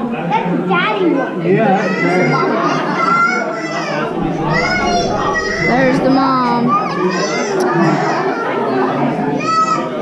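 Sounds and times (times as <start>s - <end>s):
chatter of visitors: 0.0s - 10.0s
children talking and calling out: 0.7s - 8.4s.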